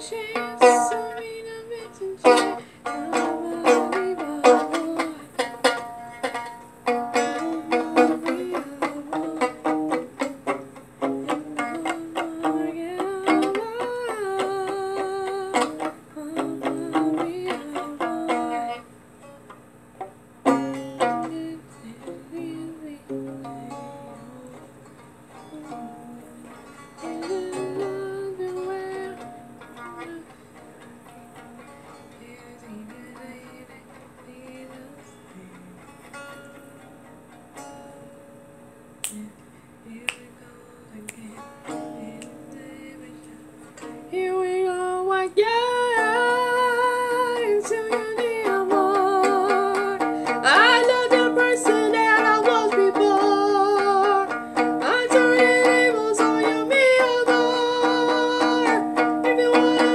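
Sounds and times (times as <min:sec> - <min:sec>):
violin plucked pizzicato: 0:00.0 - 0:18.9, 0:20.0 - 0:38.2, 0:41.4 - 0:59.9
woman singing with vibrato: 0:00.0 - 0:18.9, 0:20.4 - 0:36.2, 0:39.1 - 0:59.9.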